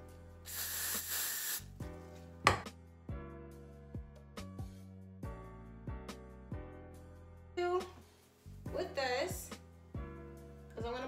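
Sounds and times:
background music: 0.0 - 11.0
aerosol spray hissing: 0.5 - 1.8.

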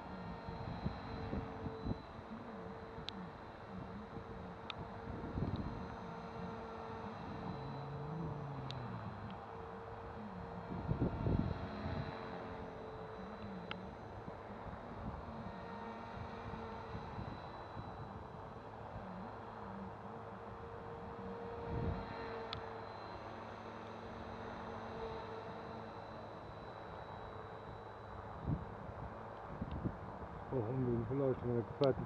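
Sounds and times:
wind rumble on microphone: 0.0 - 2.2, 2.9 - 9.4, 10.6 - 12.4, 16.1 - 19.2, 21.6 - 22.2, 28.3 - 32.0
rc helicopter motor whine: 0.0 - 32.0.

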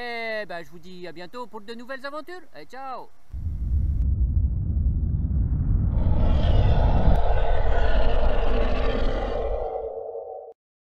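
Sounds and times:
steady hum and hiss: 0.0 - 4.0
heavy rumble: 3.3 - 10.5.

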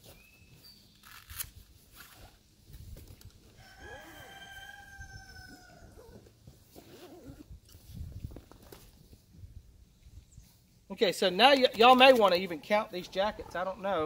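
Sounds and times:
rooster crowing: 3.6 - 6.2.

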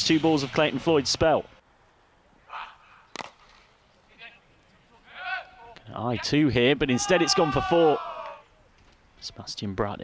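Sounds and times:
cricket bat striking ball: 3.1 - 3.6.

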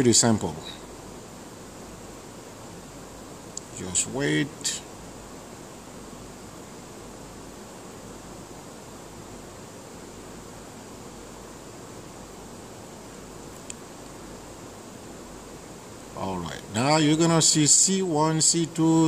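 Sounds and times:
steady background hiss: 0.0 - 19.0
faint click: 3.5 - 3.7, 13.6 - 14.2.

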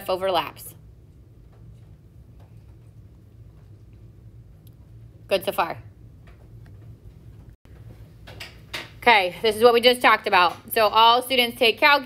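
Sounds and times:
low steady hum: 0.0 - 12.0.

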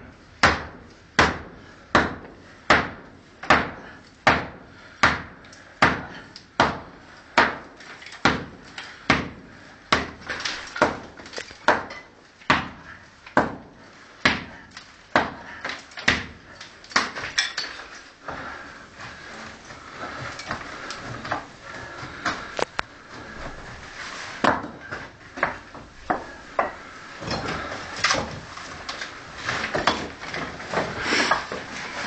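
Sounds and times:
rubble scraping and shifting: 16.7 - 32.0
brick and rubble knocking: 24.4 - 28.5.

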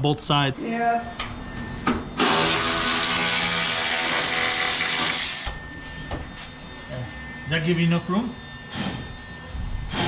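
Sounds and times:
handheld power tool running: 2.2 - 5.5.

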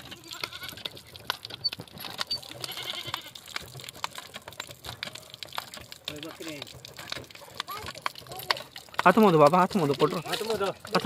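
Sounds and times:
hand pump knocking and clicking: 0.0 - 11.0.

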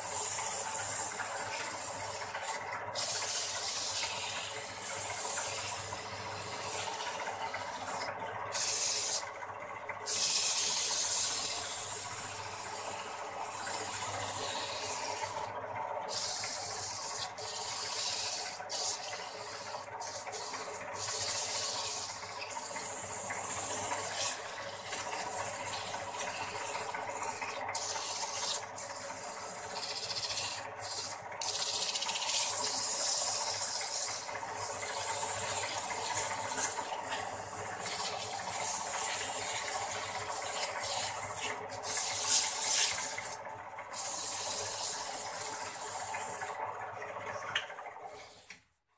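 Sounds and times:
tool hissing on spinning wood: 0.0 - 9.2, 10.0 - 15.5, 16.1 - 46.6
wood lathe humming: 0.0 - 48.5.

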